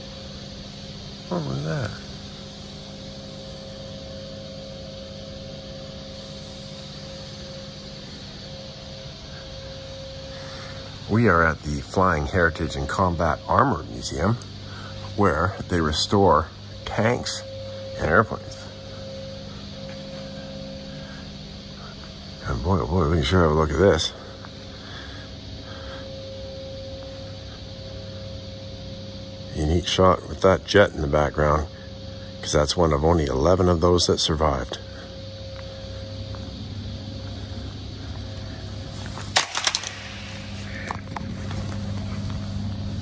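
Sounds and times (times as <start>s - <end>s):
ventilation hum: 0.0s - 43.0s.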